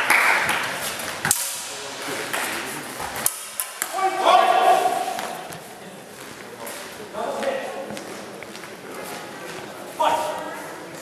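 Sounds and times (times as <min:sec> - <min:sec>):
footsteps: 0:00.4 - 0:11.0
faint voices: 0:00.7 - 0:11.0.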